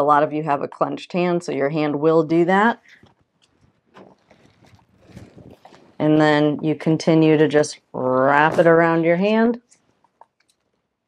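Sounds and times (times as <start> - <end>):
strap rustling and handling: 2.8 - 6.0.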